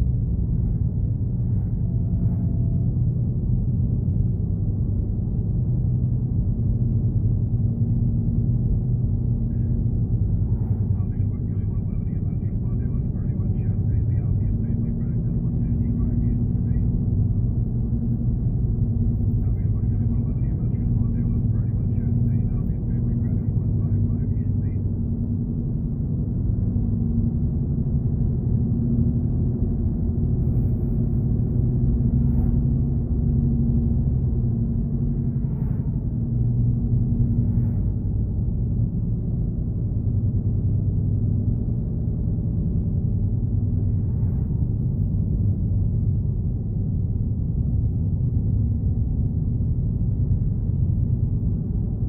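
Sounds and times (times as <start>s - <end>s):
car engine and tyres rumbling: 0.0s - 52.0s
faint steady hum: 0.0s - 52.0s.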